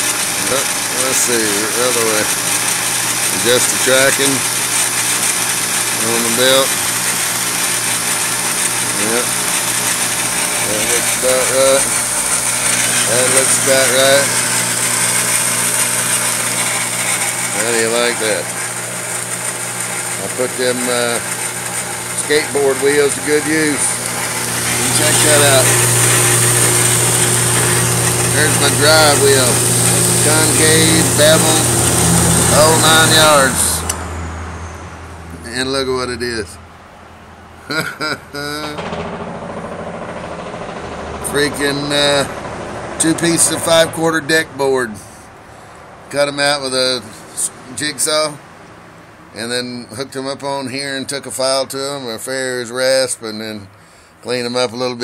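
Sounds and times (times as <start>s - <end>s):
belt grinder motor hum: 0.0s - 34.1s, 38.4s - 44.3s.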